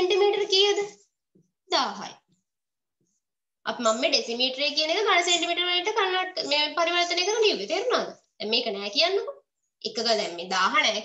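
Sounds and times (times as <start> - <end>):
high voice sing-song speaking: 3.7 - 11.0.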